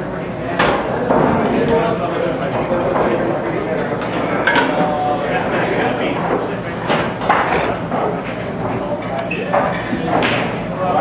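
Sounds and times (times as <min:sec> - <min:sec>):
crowd chatter: 0:00.0 - 0:11.0
pool balls clacking: 0:00.5 - 0:11.0.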